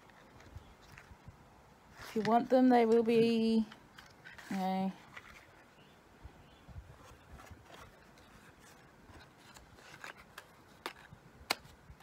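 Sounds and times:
small box rubbing and clicking: 0:03.7 - 0:05.7, 0:07.0 - 0:11.8.

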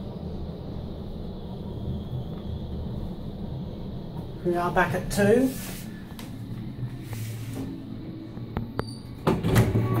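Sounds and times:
elevator humming: 0:00.0 - 0:10.0
elevator doors sliding open: 0:06.5 - 0:10.0.

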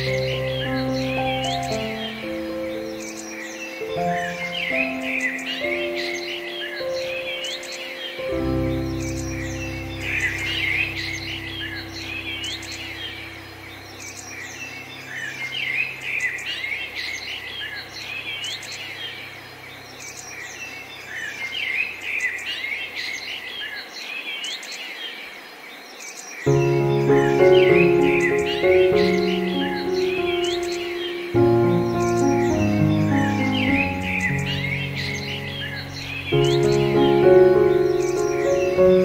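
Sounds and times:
soft piano chord: 0:00.0 - 0:21.9, 0:26.5 - 0:39.0
songbirds chirping and singing: 0:00.0 - 0:39.0.

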